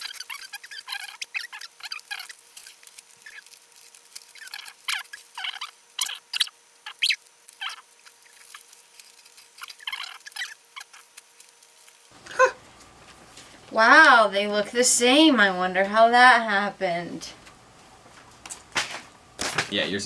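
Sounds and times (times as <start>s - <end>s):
paper crinkling and rustling: 0.0s - 12.2s.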